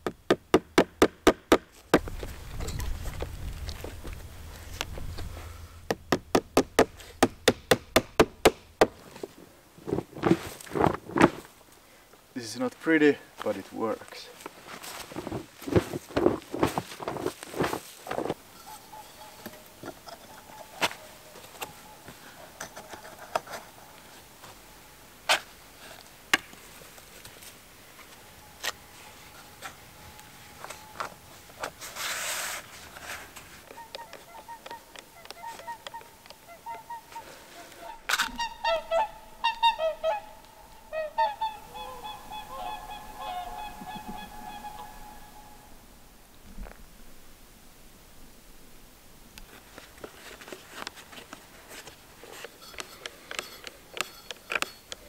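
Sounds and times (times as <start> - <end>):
knocks and handling sounds: 5.9 - 11.6, 14.4 - 18.5, 19.3 - 24.6, 49.4 - 55.0
swans honking: 18.5 - 25.0, 33.6 - 45.9.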